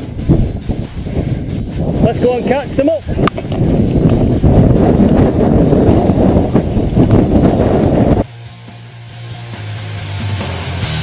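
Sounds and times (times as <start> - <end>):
wind buffeting microphone: 0.0 - 8.3
rock music: 0.0 - 11.0.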